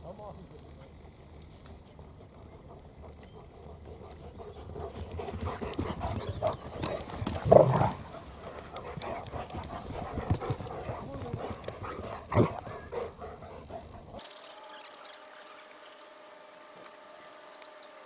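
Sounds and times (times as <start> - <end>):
dogs panting: 0.2 - 14.2
paws thudding on turf: 2.9 - 14.2.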